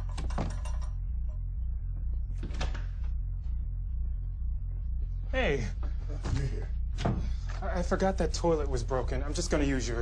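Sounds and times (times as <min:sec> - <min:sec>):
low pulsing music drone: 0:00.0 - 0:10.0.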